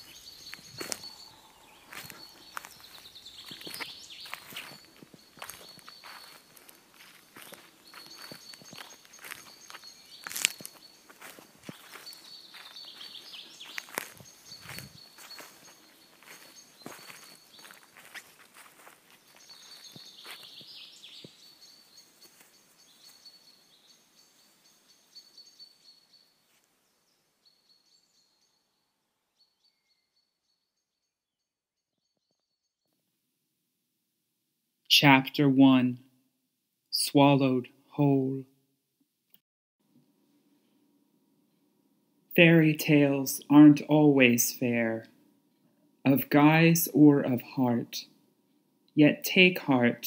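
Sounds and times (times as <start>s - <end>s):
footsteps: 0.0s - 21.4s.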